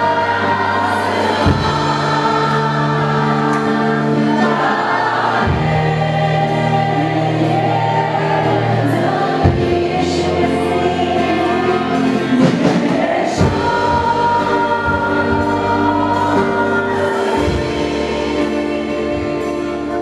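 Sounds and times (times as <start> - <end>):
bass notes: 0.0 - 20.0
group singing worship song: 0.0 - 20.0
held keyboard chords: 0.0 - 20.0.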